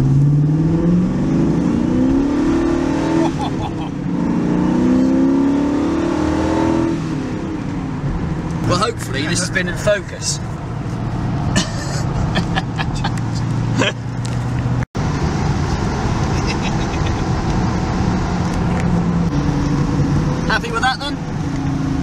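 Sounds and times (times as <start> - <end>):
car engine running from inside cabin: 0.0 - 22.0.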